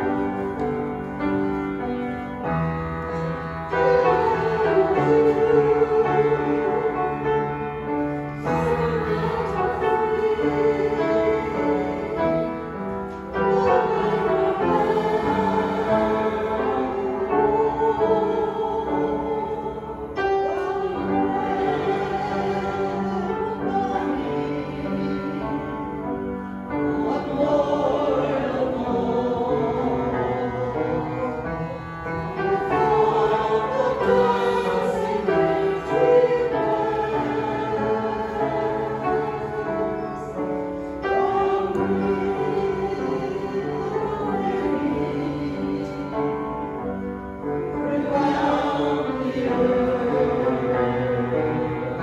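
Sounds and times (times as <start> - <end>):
congregation singing a hymn: 0.0 - 52.0
piano accompaniment: 0.0 - 52.0.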